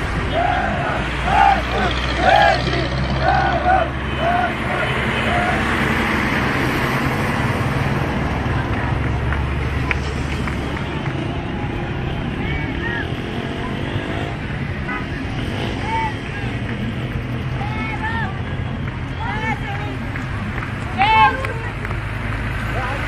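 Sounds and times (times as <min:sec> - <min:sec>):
people shouting: 0:00.0 - 0:05.9, 0:12.2 - 0:14.3, 0:17.6 - 0:18.6, 0:20.9 - 0:21.7
road noise: 0:00.0 - 0:23.0
vehicle engine hum: 0:00.0 - 0:23.0.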